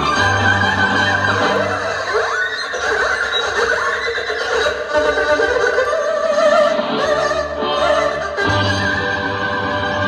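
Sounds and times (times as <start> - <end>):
erhu duet with sliding glides: 0.0 - 10.0.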